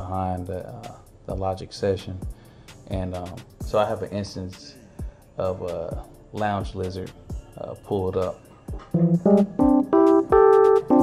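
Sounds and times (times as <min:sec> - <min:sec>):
electric piano chords: 0:08.9 - 0:11.0.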